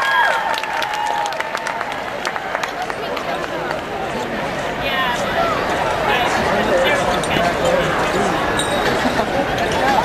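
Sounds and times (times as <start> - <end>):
crowd clapping and cheering: 0.0 - 4.2.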